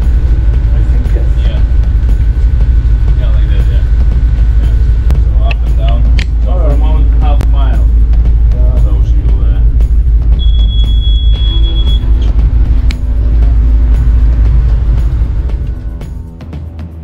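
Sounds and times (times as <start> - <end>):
steady low rumble: 0.0 - 16.8
music: 0.0 - 17.0
high electronic beep: 10.3 - 12.3.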